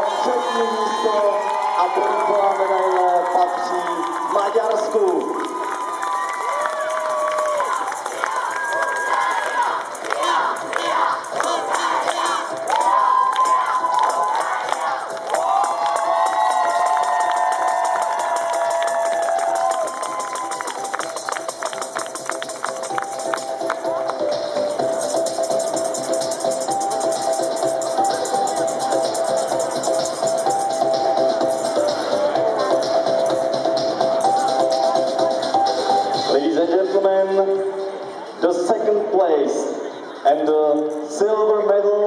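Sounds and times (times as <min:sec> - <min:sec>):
crowd cheering and shouting: 0:00.0 - 0:21.9
music: 0:00.0 - 0:42.0
crowd clapping: 0:00.1 - 0:25.1.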